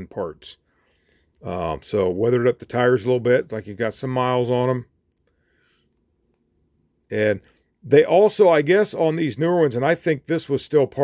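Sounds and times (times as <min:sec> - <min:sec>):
very faint clicks: 0:05.0 - 0:06.8.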